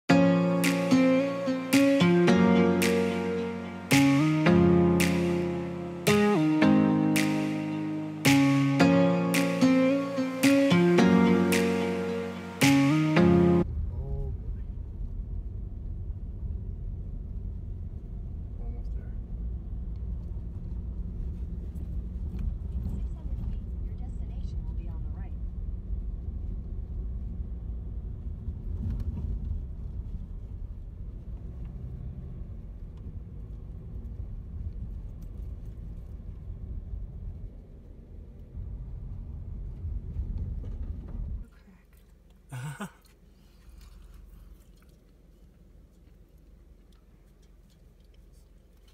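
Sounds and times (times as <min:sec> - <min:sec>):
engine and tyre rumble: 0:13.6 - 0:42.4.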